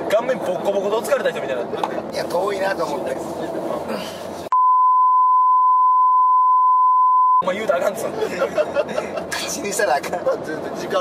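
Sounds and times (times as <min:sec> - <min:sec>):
censor bleep tone: 0:04.5 - 0:07.4.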